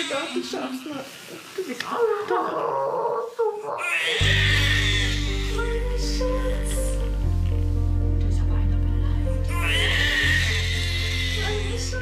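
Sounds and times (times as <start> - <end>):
newborn baby crying: 0.0 - 1.0, 2.0 - 7.1, 9.5 - 12.0.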